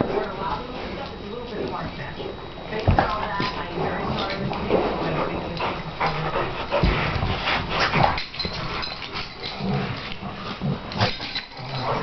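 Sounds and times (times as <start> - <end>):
dogs scuffling: 0.0 - 12.0
dog vocal noises: 3.6 - 12.0.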